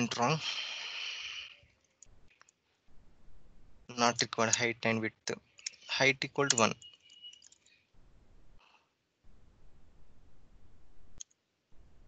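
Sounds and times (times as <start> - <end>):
breathy exhale: 0.4 - 1.6
computer clicks: 6.4 - 7.7.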